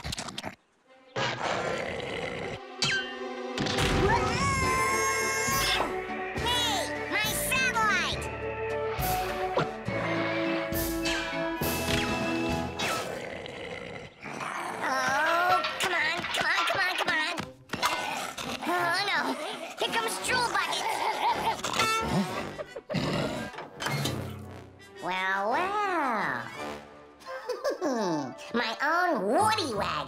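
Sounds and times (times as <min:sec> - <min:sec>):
cartoon background music: 0:00.9 - 0:13.2, 0:14.8 - 0:30.0
long rising and falling cry: 0:04.0 - 0:05.7.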